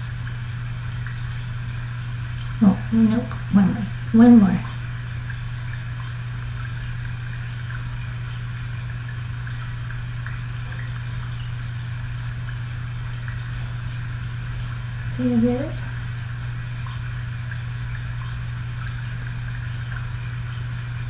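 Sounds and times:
low room hum: 0.0 - 21.0.

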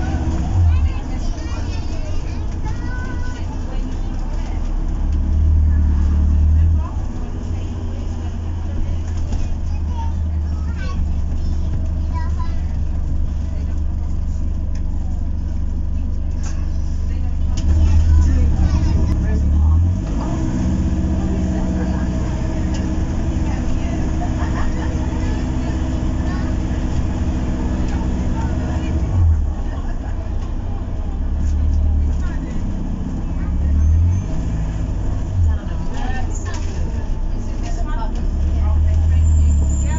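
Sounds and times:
bus drivetrain and road rumble: 0.0 - 39.9.

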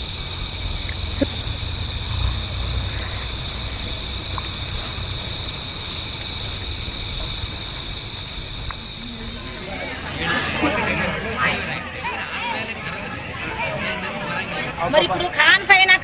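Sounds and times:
low outdoor rumble: 0.0 - 10.6
crickets chirping: 0.0 - 11.6.

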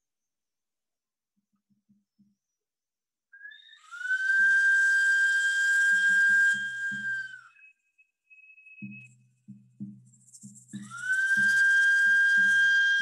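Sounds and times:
hand-held whistle note: 3.4 - 9.6, 10.6 - 13.0.

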